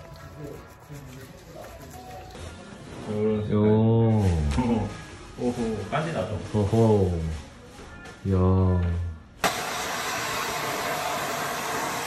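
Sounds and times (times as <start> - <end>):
hair dryer blowing: 9.4 - 12.0.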